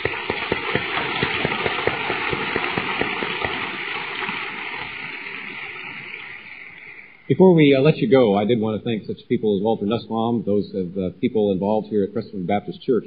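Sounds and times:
audience applauding: 0.0s - 6.4s.

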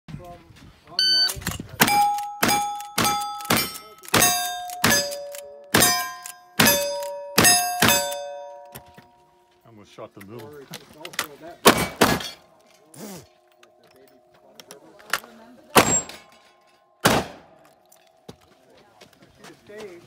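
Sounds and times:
shot timer beep: 1.0s - 5.3s
steel plate target ringing: 1.0s - 9.2s, 15.8s - 18.2s
rifle shots: 1.8s - 8.3s, 11.6s - 12.4s, 15.8s - 16.2s, 17.0s - 17.6s.

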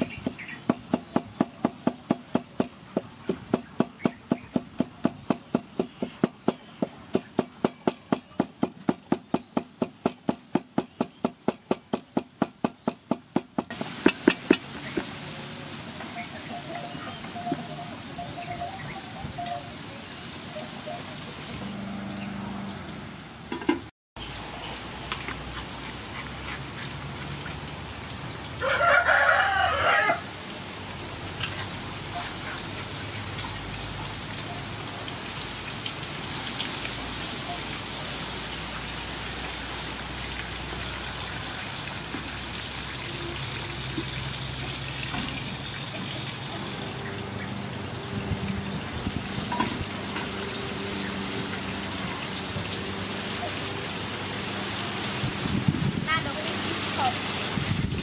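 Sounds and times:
oil sizzling in a wok: 13.7s - 18.2s, 24.2s - 58.0s
rooster crowing: 28.6s - 30.3s.

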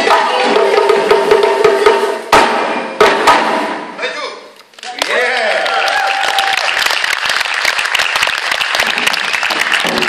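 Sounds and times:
hand drum ensemble playing: 0.0s - 3.9s.

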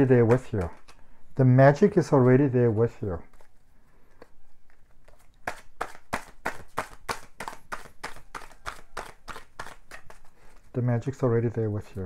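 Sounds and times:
cards being shuffled: 0.0s - 1.1s, 1.8s - 12.0s.

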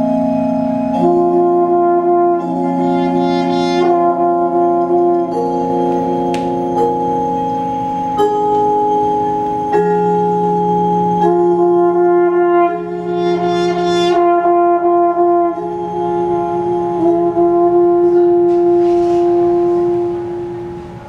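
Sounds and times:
french horn: 0.0s - 7.2s, 10.8s - 20.7s
wind ensemble sustained chord: 0.0s - 8.2s, 10.5s - 21.0s.

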